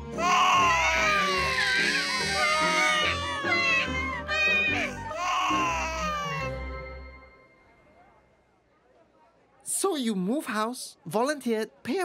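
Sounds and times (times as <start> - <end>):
background music: 0.0 - 8.2
cartoon dog bawling: 0.2 - 6.6.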